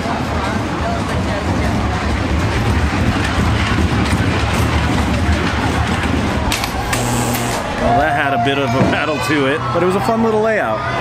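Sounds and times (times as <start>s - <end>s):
roller coaster train rumbling: 0.0s - 7.0s, 7.6s - 11.0s.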